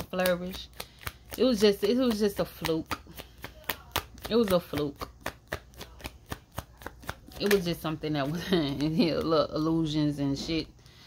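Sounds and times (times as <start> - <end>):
cards being shuffled: 0.0 - 9.8.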